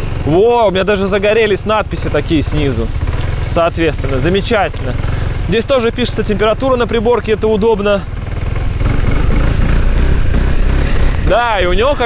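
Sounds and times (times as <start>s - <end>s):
scooter engine rumbling: 0.0s - 12.0s.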